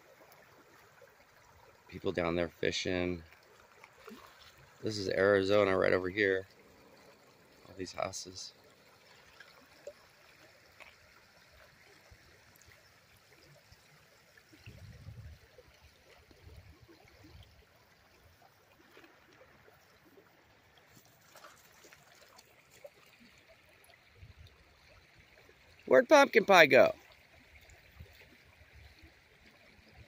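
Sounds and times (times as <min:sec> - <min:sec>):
river water flowing over gravel: 0:00.0 - 0:30.0.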